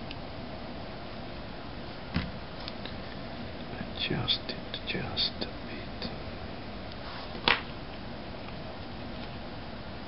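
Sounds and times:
steady background hiss: 0.0 - 10.0
man whispering: 3.7 - 6.3.

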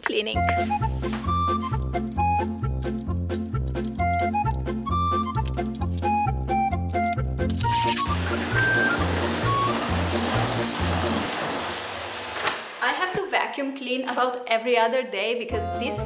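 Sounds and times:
music with bouncing bass: 0.4 - 10.6.

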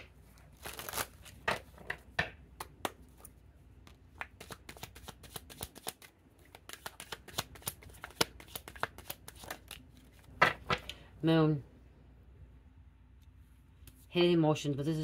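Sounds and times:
cards shuffled by hand: 0.3 - 2.0, 2.6 - 10.4.

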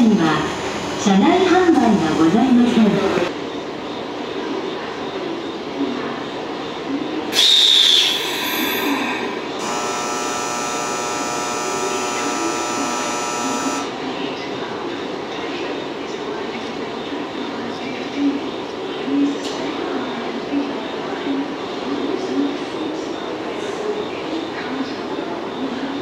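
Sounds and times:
train air hissing: 7.3 - 9.6
electronic departure bell ringing: 9.6 - 13.9.

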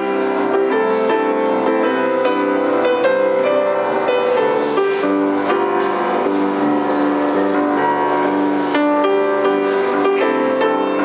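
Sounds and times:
grand piano chords: 0.0 - 11.0.

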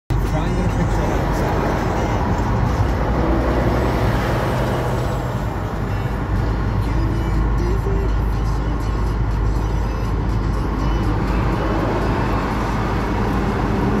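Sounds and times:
car engine and road rumble: 0.1 - 14.0.

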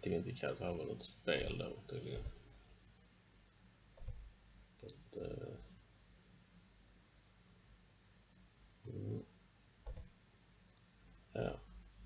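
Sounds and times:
low murmured voice: 5.2 - 5.6, 8.9 - 9.3, 11.4 - 11.6.

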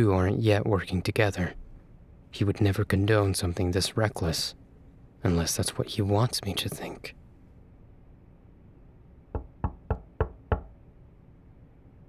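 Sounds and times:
knocking on a door: 9.3 - 10.8.

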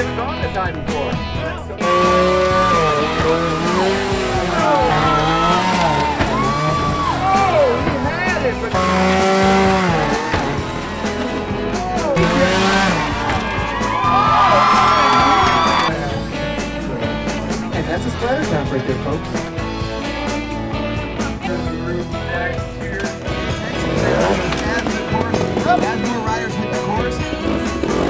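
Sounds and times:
motorcycle engines revving: 0.0 - 28.0
music: 0.0 - 28.0.

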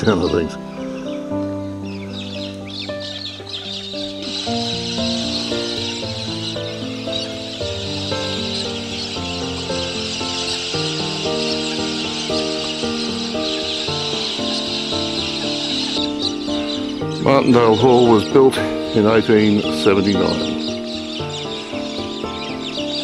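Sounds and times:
melodic background music: 0.0 - 23.0
flock of parrots screeching: 2.2 - 18.4.

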